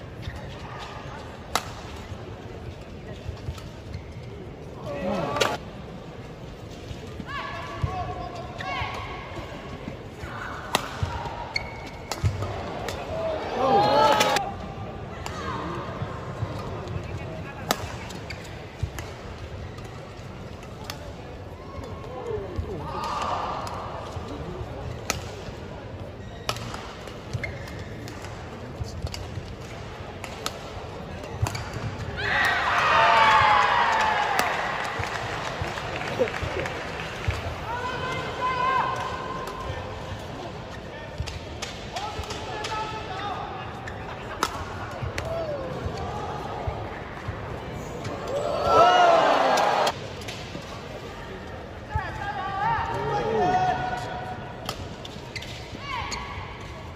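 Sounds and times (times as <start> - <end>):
crowd voices: 0.0 - 56.9.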